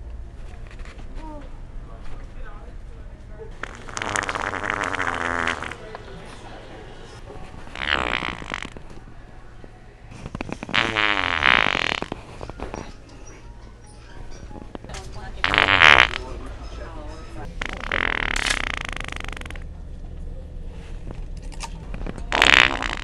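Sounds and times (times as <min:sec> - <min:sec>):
fart noise toy: 0:03.6 - 0:05.9, 0:07.6 - 0:08.9, 0:10.2 - 0:12.9, 0:15.4 - 0:16.3, 0:17.4 - 0:19.6, 0:22.3 - 0:23.0.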